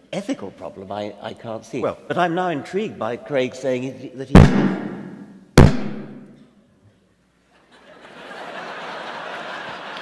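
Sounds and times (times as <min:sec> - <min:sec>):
loud thump near microphone: 0:04.4 - 0:06.2.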